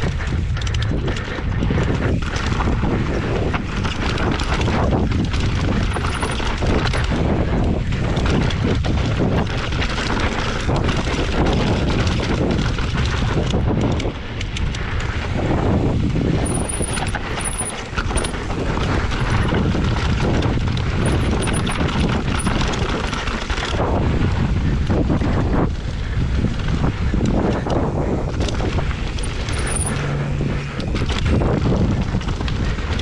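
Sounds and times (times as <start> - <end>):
bike rattling and knocking: 0.0 - 33.0
bike tyres rolling over dirt: 0.0 - 33.0
wind buffeting microphone: 0.0 - 33.0.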